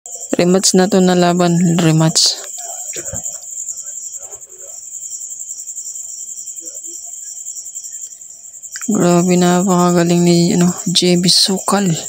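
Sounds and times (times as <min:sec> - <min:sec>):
high-pitched insect trill: 0:00.1 - 0:12.0.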